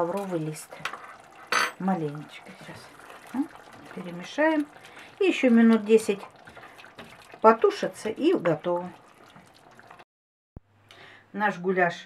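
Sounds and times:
wet stirring in a pot: 0.0s - 10.0s.

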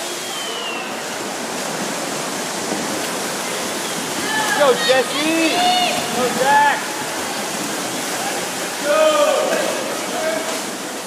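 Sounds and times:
swimmers splashing: 0.0s - 11.0s.

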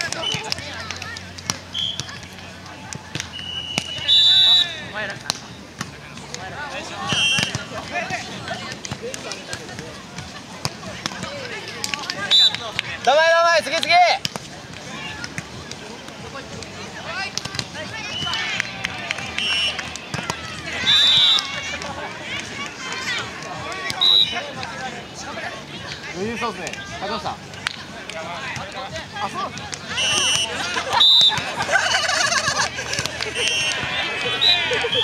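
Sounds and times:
volleyball slaps: 0.0s - 4.1s, 5.1s - 13.2s, 13.8s - 24.0s, 27.5s - 31.7s, 32.6s - 35.0s
players calling: 0.0s - 35.0s
referee's whistle blast: 1.7s - 2.0s, 3.3s - 4.8s, 7.0s - 7.5s, 19.4s - 19.8s, 29.9s - 31.4s, 33.4s - 35.0s.

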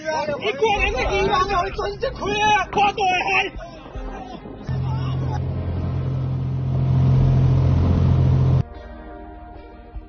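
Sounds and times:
boat engine drone: 4.7s - 8.6s.

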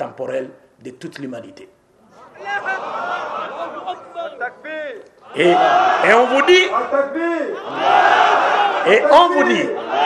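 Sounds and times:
crowd shouting together: 2.1s - 10.0s.

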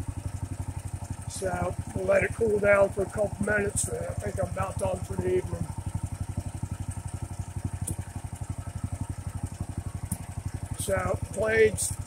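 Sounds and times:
single-cylinder engine running: 0.0s - 12.0s.

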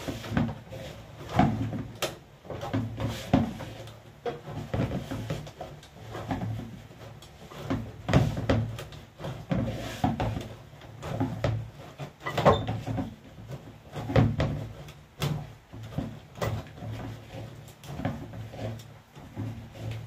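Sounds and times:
dough kneading thumps: 0.0s - 20.0s.

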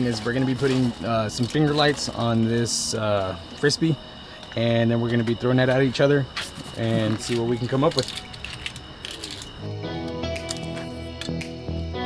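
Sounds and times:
background music with beat: 9.6s - 12.0s.

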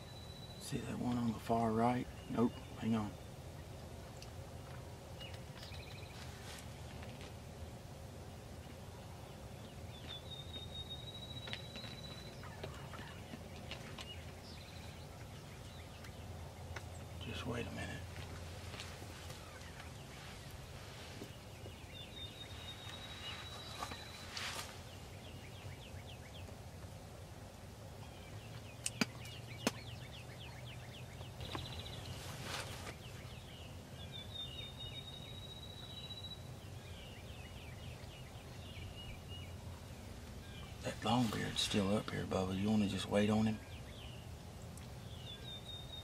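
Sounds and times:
songbird trills and chips: 0.0s - 7.4s, 8.6s - 18.5s, 19.2s - 46.0s
turkey gobbles: 12.1s - 14.2s
sharp clicks: 28.8s - 29.8s.

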